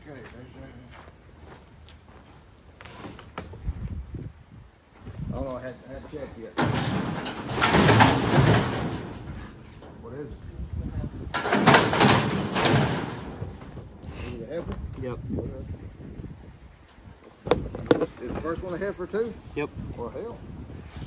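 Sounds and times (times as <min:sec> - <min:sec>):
steel chute rattling and clanging: 0:06.4 - 0:10.4, 0:11.2 - 0:14.0.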